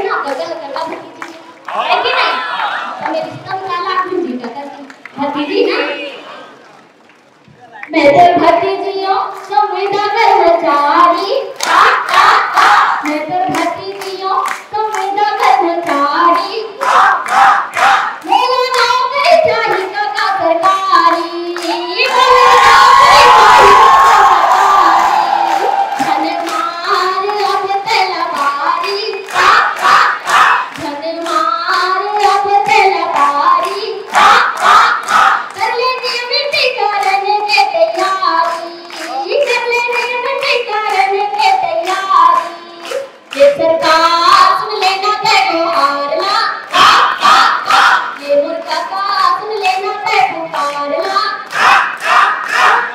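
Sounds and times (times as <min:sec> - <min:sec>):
woman singing through loudspeakers: 0:00.0 - 0:02.3, 0:07.9 - 0:17.3, 0:18.2 - 0:51.6
crowd clapping in rhythm: 0:00.0 - 0:05.6, 0:07.1 - 0:52.9
crowd noise: 0:00.0 - 0:52.9.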